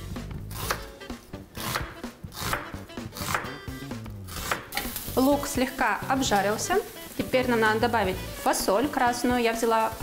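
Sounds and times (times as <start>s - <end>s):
knife chopping on wooden board: 0.5s - 0.9s, 1.6s - 3.6s, 4.3s - 4.9s.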